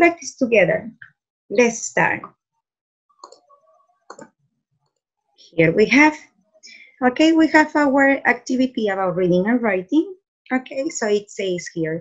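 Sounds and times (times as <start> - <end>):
computer mouse clicks: 3.2 - 3.5, 4.1 - 4.3.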